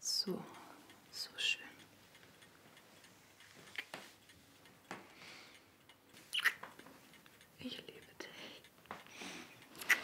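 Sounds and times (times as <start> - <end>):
breath: 5.1 - 5.7, 9.1 - 9.6
kissing lip smacks: 6.3 - 6.6, 9.8 - 10.0.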